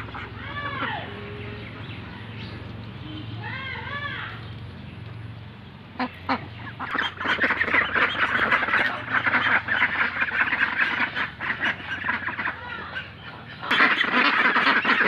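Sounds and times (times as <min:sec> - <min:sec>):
ducks quacking: 0:00.0 - 0:02.3, 0:05.9 - 0:15.0.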